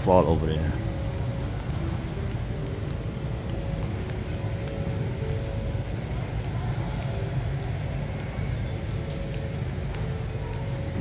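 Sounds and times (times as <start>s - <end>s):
distant activity: 0.0s - 11.0s.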